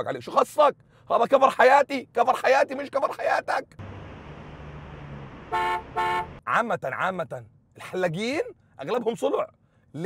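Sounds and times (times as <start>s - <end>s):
street traffic rumbling: 2.0s - 10.0s
car horn honks: 5.4s - 6.4s.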